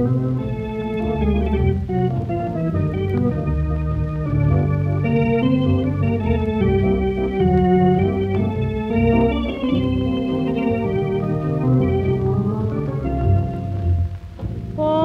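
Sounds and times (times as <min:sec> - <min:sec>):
instrumental jazz: 0:00.0 - 0:15.0.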